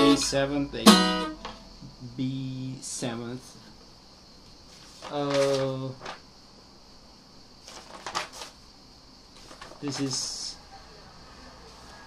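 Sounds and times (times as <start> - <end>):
paper sheets rustling: 4.7 - 6.3, 7.6 - 8.6, 9.4 - 10.5.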